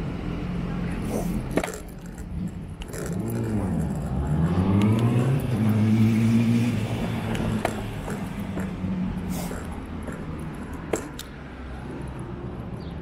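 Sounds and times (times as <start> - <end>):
vehicle engine accelerating: 0.0 - 12.0.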